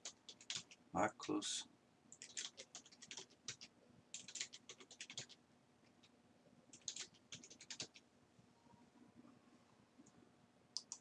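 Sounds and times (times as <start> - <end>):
faint keyboard typing: 0.0 - 1.4, 2.1 - 8.1, 10.0 - 11.0.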